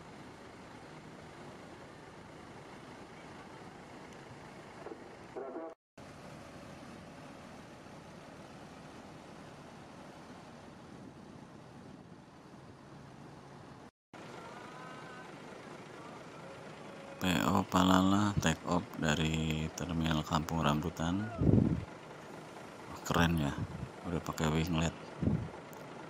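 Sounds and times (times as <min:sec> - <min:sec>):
diesel bus engines idling: 0:00.0 - 0:05.4, 0:07.8 - 0:26.0
faint voices: 0:14.2 - 0:21.6.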